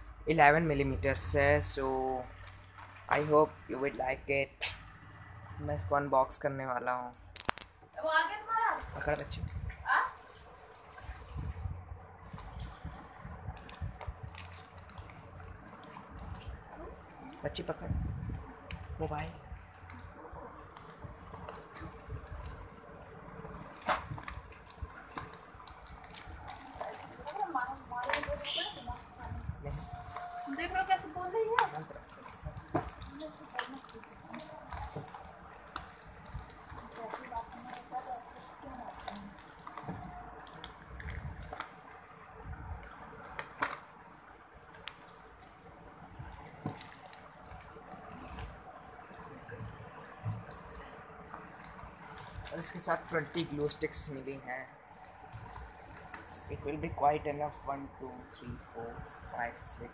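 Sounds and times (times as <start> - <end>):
plastic packaging crinkling: 1.6 - 3.5, 6.8 - 8.1, 12.2 - 20.0, 20.7 - 29.4, 30.0 - 41.8, 46.2 - 48.6, 51.4 - 56.5.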